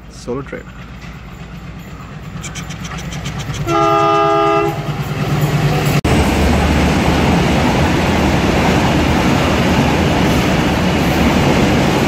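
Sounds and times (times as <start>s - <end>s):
diesel locomotive engine rumble: 0.0s - 12.0s.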